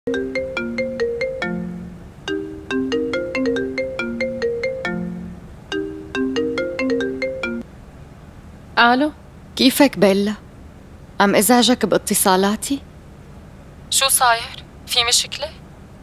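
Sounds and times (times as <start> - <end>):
phone ringtone melody: 0.1 - 7.6.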